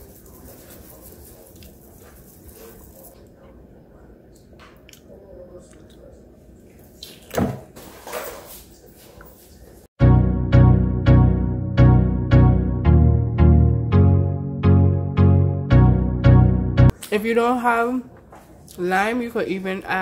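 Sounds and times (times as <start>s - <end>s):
leaves rustling in a metal bowl: 0.0s - 3.2s.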